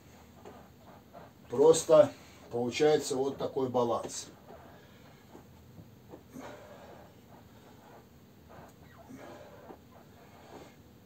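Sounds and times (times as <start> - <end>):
man breathing faintly: 0.0 - 2.6, 4.2 - 11.0.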